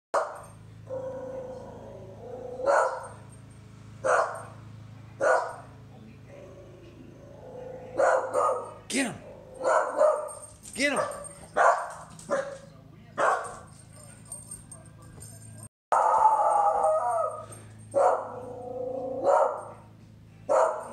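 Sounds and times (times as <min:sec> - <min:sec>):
dog barking: 0:00.1 - 0:01.7, 0:02.4 - 0:03.2, 0:04.0 - 0:04.6, 0:05.2 - 0:05.7, 0:07.6 - 0:15.0, 0:15.9 - 0:19.9, 0:20.5 - 0:20.9
steady low hum: 0:00.2 - 0:20.9.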